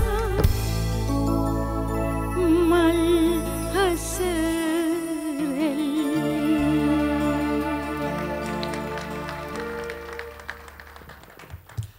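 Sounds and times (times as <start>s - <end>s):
audience clapping: 6.5s - 11.9s.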